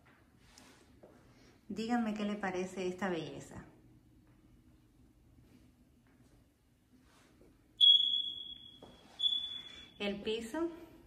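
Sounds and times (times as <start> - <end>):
high-pitched electronic beeps: 7.8 - 10.0.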